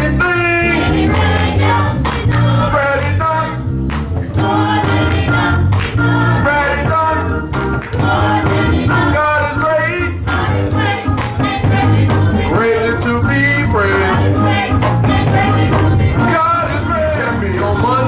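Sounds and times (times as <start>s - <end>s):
choir singing in harmony: 0.0s - 3.6s, 4.2s - 18.0s
bass line: 0.0s - 18.0s
steady drum beat: 0.0s - 18.0s.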